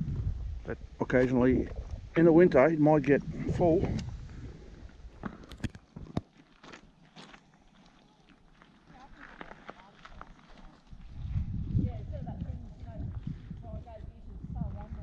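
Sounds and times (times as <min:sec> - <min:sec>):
wind rumble on microphone: 0:00.0 - 0:05.2, 0:10.9 - 0:15.0
footsteps on loose stones: 0:04.7 - 0:14.0.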